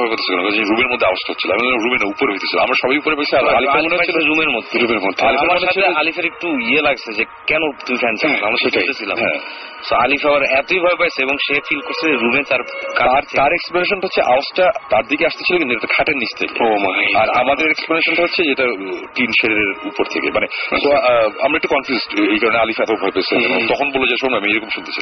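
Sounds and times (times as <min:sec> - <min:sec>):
person talking over radio: 0:07.7 - 0:14.1, 0:18.8 - 0:25.0.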